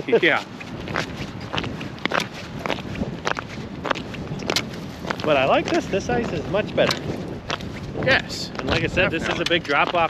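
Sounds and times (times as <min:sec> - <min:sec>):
footsteps on ice: 0:00.3 - 0:10.0.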